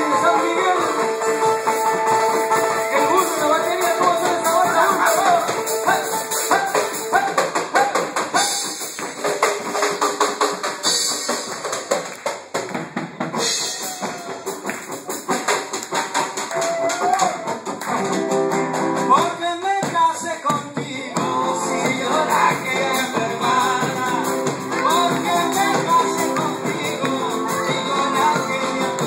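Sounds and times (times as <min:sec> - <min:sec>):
drum kit: 0:00.0 - 0:29.0
electric and acoustic guitars: 0:00.0 - 0:29.0
large hand drum beat: 0:19.2 - 0:29.0.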